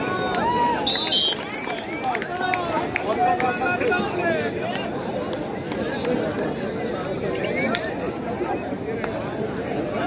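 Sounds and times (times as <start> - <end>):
crowd chatter and calling out: 0.0 - 10.0.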